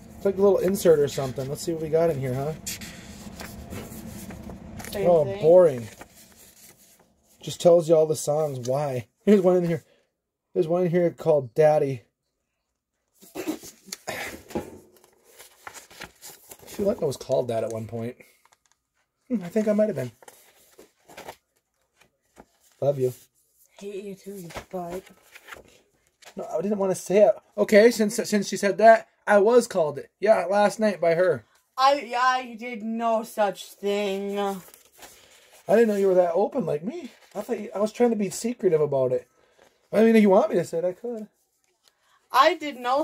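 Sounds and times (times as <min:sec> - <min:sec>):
low steady hum: 0:00.0 - 0:07.4
paper rustling: 0:00.1 - 0:07.5, 0:13.4 - 0:23.4, 0:24.2 - 0:26.4, 0:33.8 - 0:36.2, 0:37.0 - 0:38.0
paper booklet unfolding: 0:02.8 - 0:05.0, 0:14.9 - 0:16.9, 0:24.4 - 0:26.3
faint paper rustles and ticks: 0:14.9 - 0:23.1, 0:23.7 - 0:26.5.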